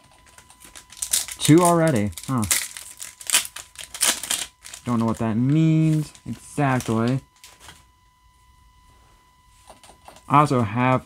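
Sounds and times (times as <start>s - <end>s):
foil pack crinkling: 0.1s - 7.8s.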